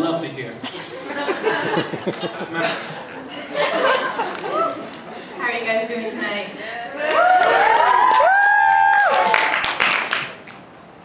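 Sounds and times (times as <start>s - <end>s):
audience cheering and whooping: 4.0s - 5.0s, 6.9s - 10.1s
clapping: 7.1s - 10.6s.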